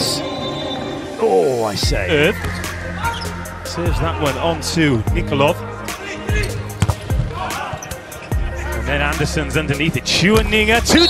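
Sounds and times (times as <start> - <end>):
arena noise: 0.0 - 11.0
background music: 0.0 - 11.0.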